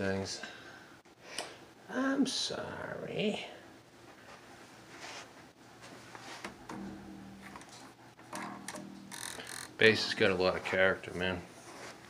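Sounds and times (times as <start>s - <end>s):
strings clicking against frets: 6.6s - 10.2s
electric bass guitar notes: 6.6s - 10.4s.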